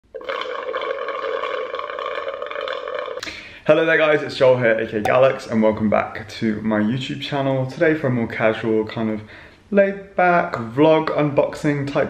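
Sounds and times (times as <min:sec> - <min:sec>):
slurping through a straw: 0:00.0 - 0:03.3.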